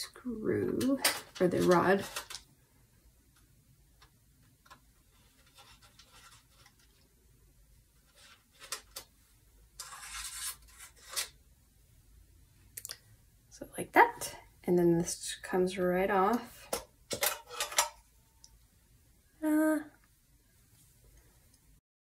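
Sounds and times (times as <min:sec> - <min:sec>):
screwdriver scraping metal: 0:09.8 - 0:11.3.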